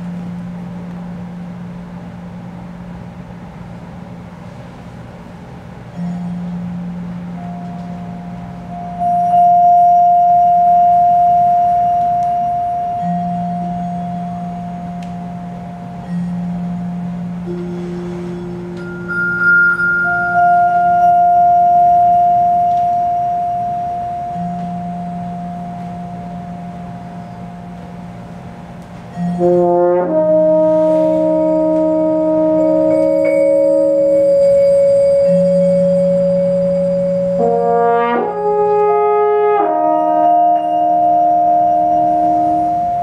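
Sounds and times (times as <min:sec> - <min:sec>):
vibraphone notes: 0:05.8 - 0:43.0
low sustained instrument note: 0:05.9 - 0:43.0.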